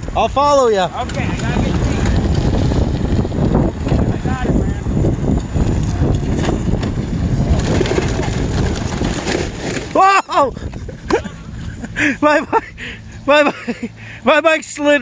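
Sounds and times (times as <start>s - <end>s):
wind buffeting microphone: 0.0s - 13.2s
person shouting: 10.0s - 10.6s.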